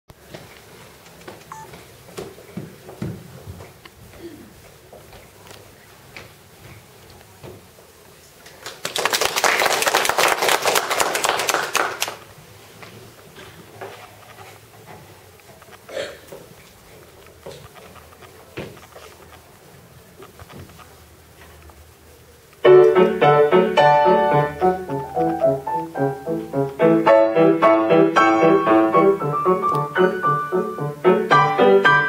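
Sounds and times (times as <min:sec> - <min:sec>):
small knocks and rustles: 0:00.2 - 0:07.8, 0:12.7 - 0:19.5, 0:20.2 - 0:21.8
audience applauding: 0:08.6 - 0:12.2.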